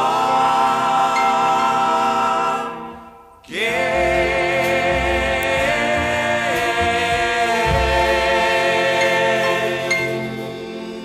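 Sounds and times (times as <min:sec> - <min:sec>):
vocal group singing in close harmony: 0:00.0 - 0:11.0.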